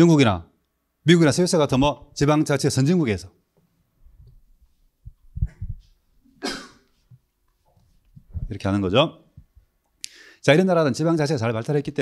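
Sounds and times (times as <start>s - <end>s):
man coughing: 6.4s - 7.0s.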